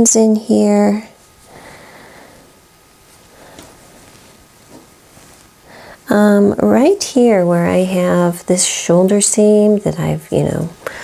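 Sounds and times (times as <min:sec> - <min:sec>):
fabric handling: 0:03.0 - 0:05.7.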